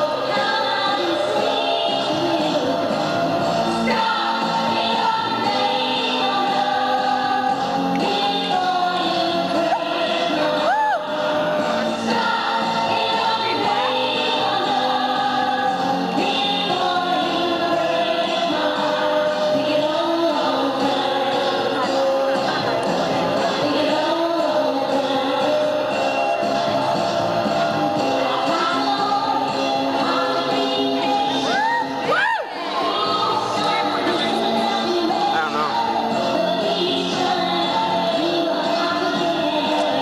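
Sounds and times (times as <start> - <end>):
women singing together: 0.0 - 27.0, 27.6 - 40.0.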